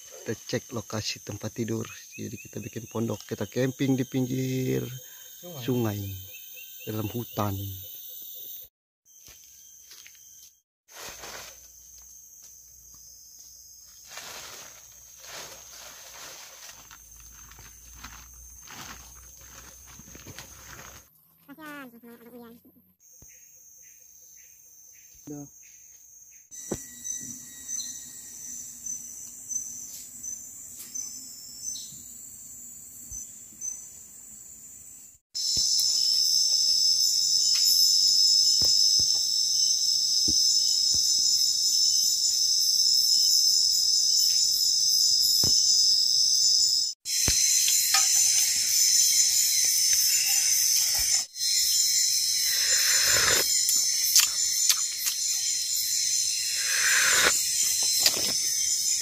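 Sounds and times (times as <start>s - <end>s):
night insects trilling: 0.0s - 59.0s.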